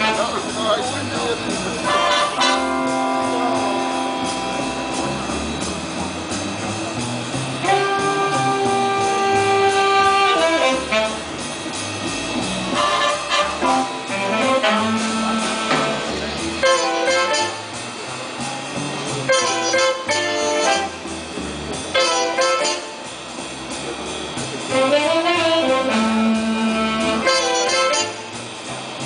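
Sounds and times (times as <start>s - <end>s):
jazz big band playing: 0.0s - 29.0s.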